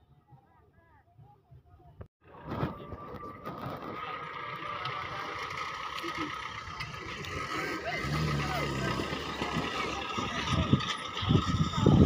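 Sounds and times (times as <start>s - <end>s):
onlookers' voices: 0.4s - 12.0s
off-road vehicle engine low revs: 2.3s - 12.0s
tyres and chassis knocking: 4.9s - 11.9s.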